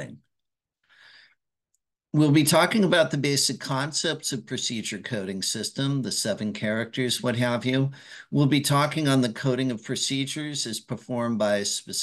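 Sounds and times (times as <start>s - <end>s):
person speaking: 0.0s - 0.5s, 1.7s - 12.0s
person breathing in: 0.8s - 1.4s, 7.9s - 8.3s.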